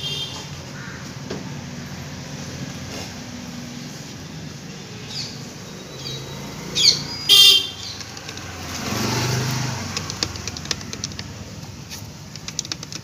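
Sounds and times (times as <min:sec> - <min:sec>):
passing vehicle engine: 0:01.1 - 0:13.0
shrill horn toots: 0:07.1 - 0:07.9
grease gun clicking: 0:09.9 - 0:11.4, 0:12.2 - 0:13.0.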